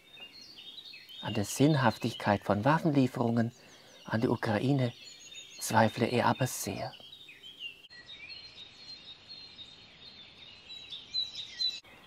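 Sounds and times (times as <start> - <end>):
small birds chirping and trilling: 0.0 - 12.0
steady outdoor hiss: 0.0 - 12.0.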